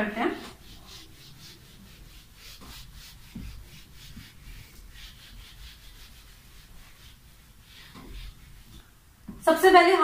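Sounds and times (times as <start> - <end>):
duster rubbing across whiteboard: 0.2 - 8.8
soft bump: 3.3 - 4.3.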